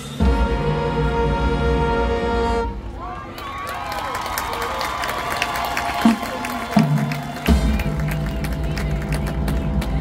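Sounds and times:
low brass notes: 0:00.0 - 0:03.0
marching band playing: 0:00.0 - 0:03.3, 0:05.5 - 0:10.0
crowd cheering and applause: 0:02.8 - 0:10.0.

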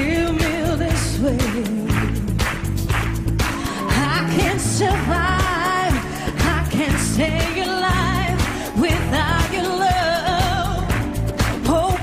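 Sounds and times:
woman singing into microphone: 0:00.0 - 0:02.5, 0:03.6 - 0:12.0
up-tempo backing track: 0:00.0 - 0:12.0.

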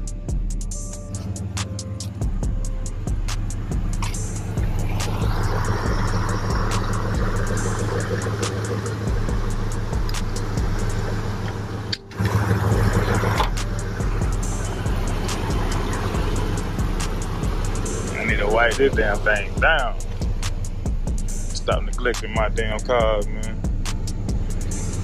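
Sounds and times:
background music with steady beat: 0:00.0 - 0:25.0
pickup truck engine idling: 0:00.0 - 0:25.0.

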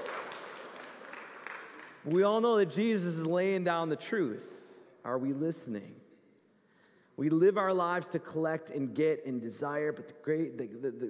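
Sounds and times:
audience applause: 0:00.0 - 0:02.2.

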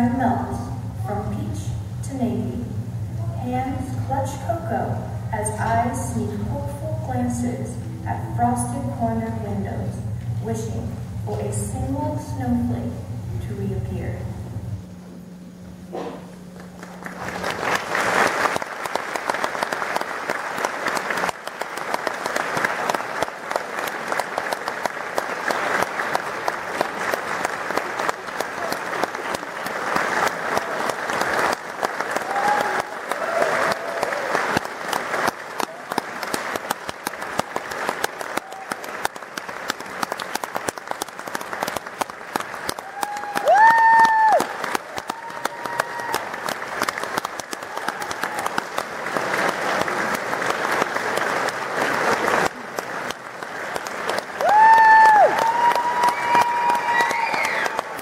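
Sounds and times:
audience applauding: 0:16.6 - 0:58.0
person whooping: 0:32.2 - 0:34.4, 0:42.8 - 0:46.3, 0:54.4 - 0:57.8.

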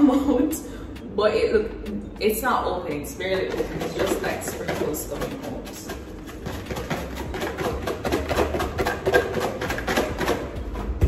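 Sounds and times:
plastic shaker bottle rattling: 0:03.3 - 0:11.0.

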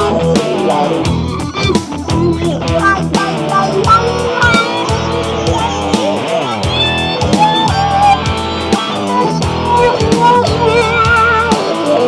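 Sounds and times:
backing guitar: 0:00.0 - 0:12.0
bass line: 0:00.0 - 0:12.0
talk box electric guitar lead: 0:00.0 - 0:12.0.

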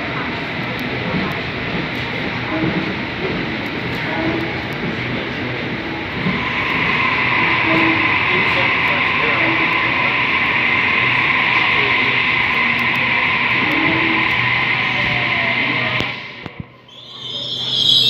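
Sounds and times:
electric train running: 0:00.0 - 0:18.0
constant high hum: 0:02.2 - 0:18.0.

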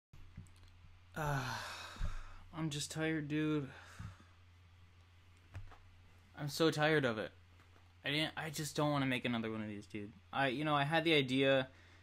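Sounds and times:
man sighing heavily: 0:01.2 - 0:02.5.

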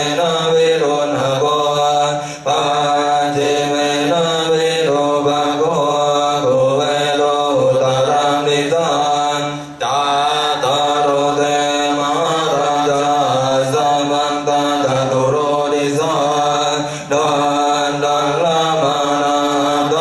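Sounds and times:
group chanting: 0:00.0 - 0:20.0.

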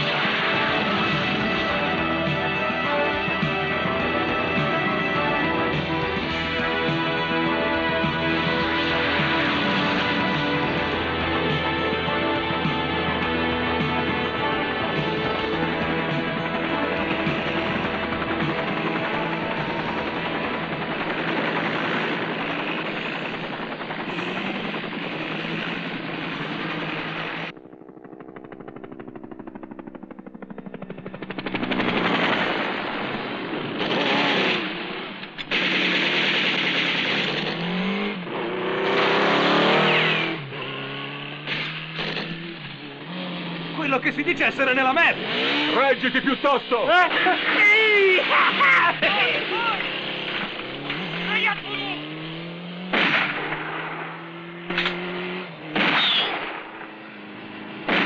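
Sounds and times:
film music: 0:00.0 - 0:58.0
helicopter rotor and engine: 0:00.0 - 0:58.0
rapid rotor chopping: 0:00.0 - 0:58.0
gunfire bursts: 0:14.9 - 0:28.0, 0:31.2 - 0:42.8, 0:43.9 - 0:58.0.

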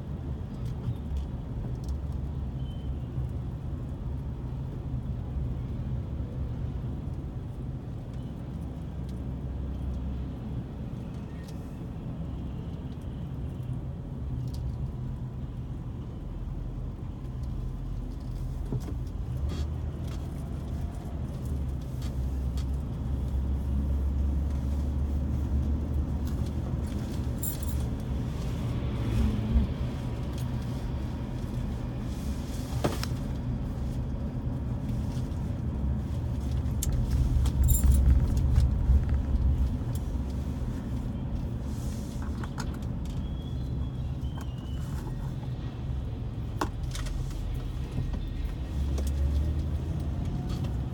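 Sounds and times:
car engine and tyre rumble: 0:00.0 - 0:50.9
light clicks and rattles: 0:34.8 - 0:41.1.

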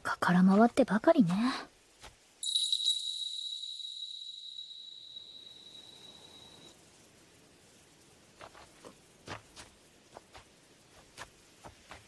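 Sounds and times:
high bell-like chime: 0:02.4 - 0:06.7.

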